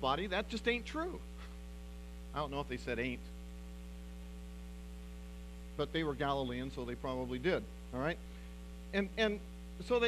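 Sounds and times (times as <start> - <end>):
man speaking: 0.0 - 1.3, 2.3 - 3.3, 5.8 - 8.2, 8.9 - 10.0
electrical mains hum: 0.0 - 10.0.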